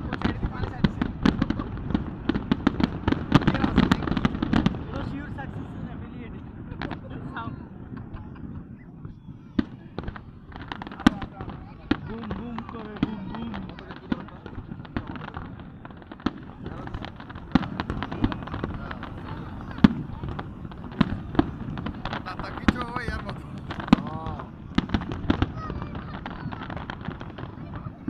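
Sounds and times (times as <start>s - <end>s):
crowd voices: 0.0s - 28.0s
fireworks bangs and crackles: 0.0s - 28.0s.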